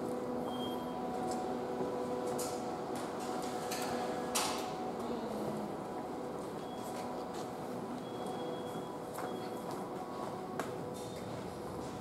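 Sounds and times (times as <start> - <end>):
steady hum of held tones: 0.0 - 12.0
short high beep: 0.4 - 1.0.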